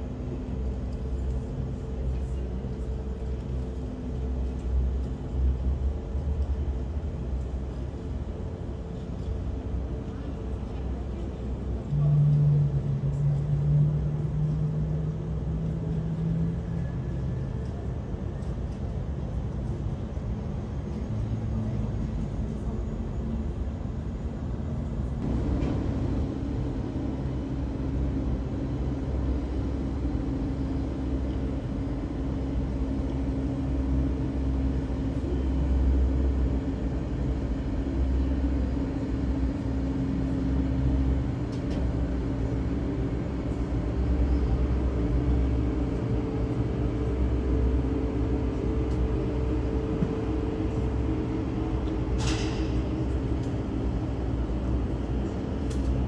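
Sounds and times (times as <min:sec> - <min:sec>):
airliner jet engine droning: 0:00.0 - 0:56.0.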